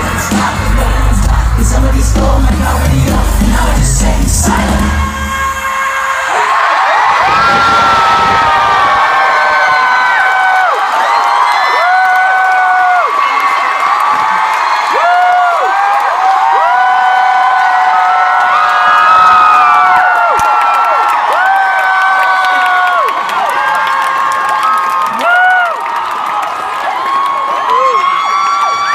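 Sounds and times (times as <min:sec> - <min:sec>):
crowd screaming and cheering: 0:00.0 - 0:28.9.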